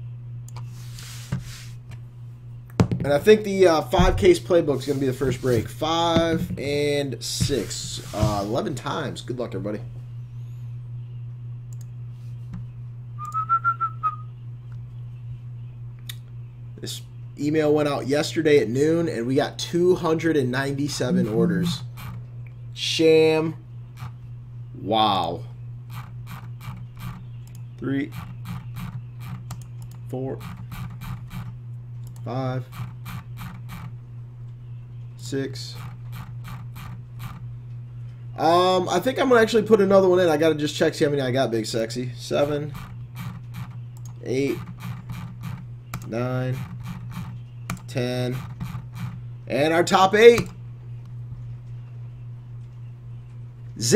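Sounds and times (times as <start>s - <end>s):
steady low hum: 0.0s - 53.9s
person whistling: 13.2s - 14.3s.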